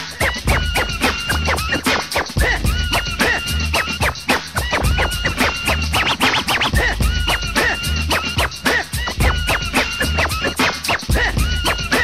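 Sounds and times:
hip hop drum beat: 0.0 - 12.0
turntable scratching: 0.0 - 12.0.

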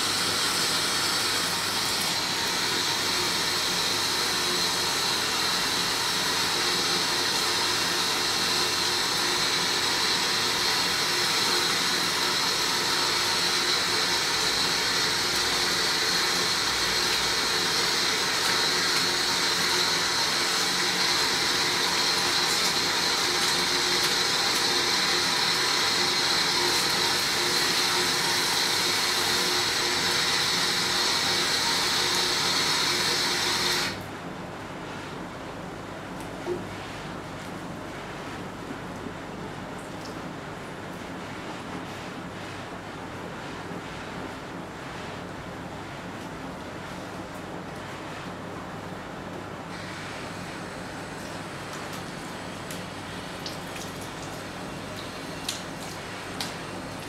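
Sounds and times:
water running from faucet: 0.0 - 34.0, 49.7 - 57.0.

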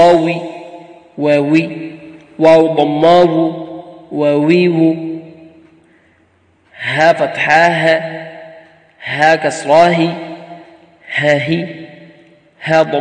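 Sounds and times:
man chanting: 0.0 - 5.6, 6.7 - 13.0.

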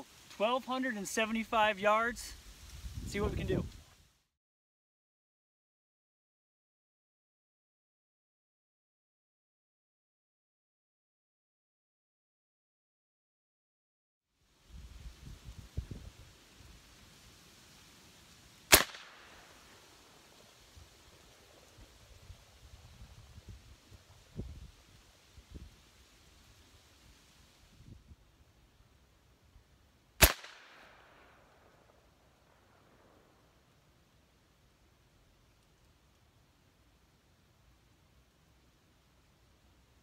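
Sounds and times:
air rifle shot with echo: 18.7 - 19.7, 30.2 - 31.9.

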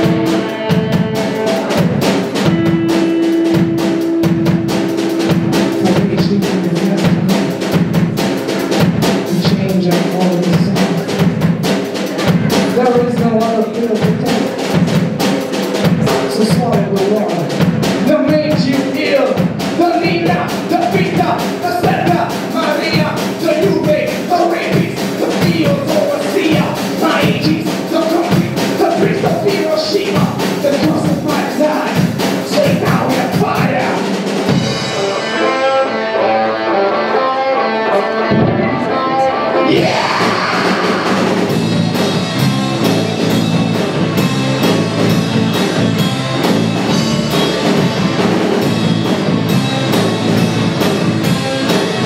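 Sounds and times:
bass guitar: 0.0 - 52.0
drum kit beat: 0.0 - 52.0
electric guitars: 0.0 - 52.0.

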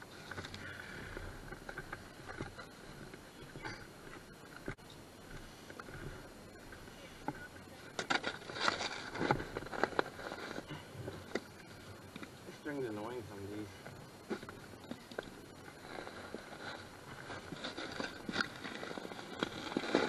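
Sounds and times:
plastic sled scraping and knocking: 0.2 - 11.6, 15.7 - 20.0
snow crunching: 15.5 - 20.0.

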